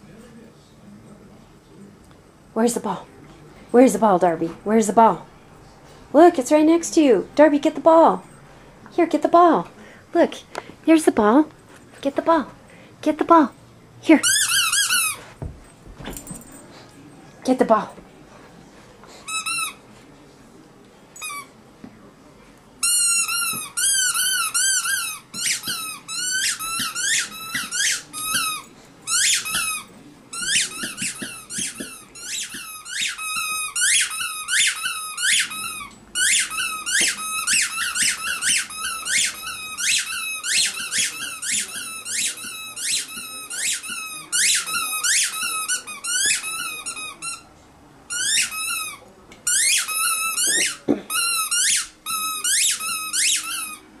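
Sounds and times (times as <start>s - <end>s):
squeaky dog toy squeaking: 14.2s - 15.2s, 22.8s - 47.5s, 48.1s - 53.8s.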